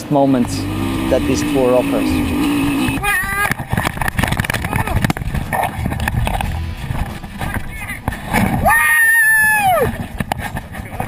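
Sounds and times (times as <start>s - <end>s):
motorcycle engine revving: 0.0s - 7.4s
rocks knocking and rattling: 3.2s - 8.6s.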